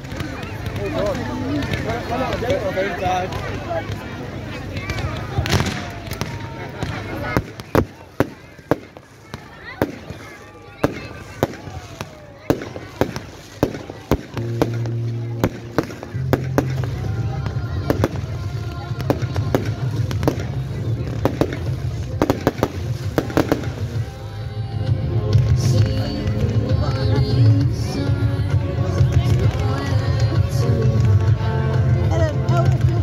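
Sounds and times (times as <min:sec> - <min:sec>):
fireworks banging and crackling: 0:00.0 - 0:33.0.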